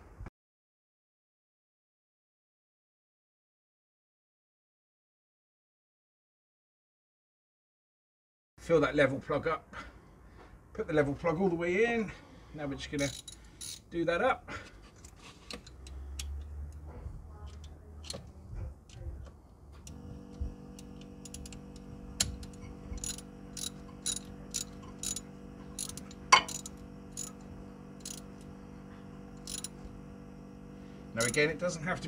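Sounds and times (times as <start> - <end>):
ratchet clicking: 13.0 - 13.9, 15.4 - 16.8, 19.8 - 28.5, 29.4 - 29.9, 31.2 - 31.6
steady hum: 15.4 - 32.0.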